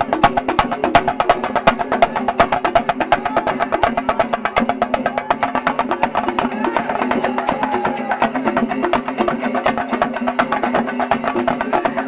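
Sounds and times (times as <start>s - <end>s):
drums beaten with sticks: 0.0s - 12.0s.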